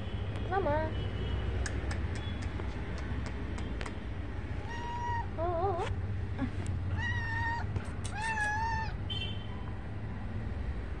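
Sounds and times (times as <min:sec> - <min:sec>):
cat meowing: 0:04.6 - 0:06.0, 0:06.9 - 0:09.0.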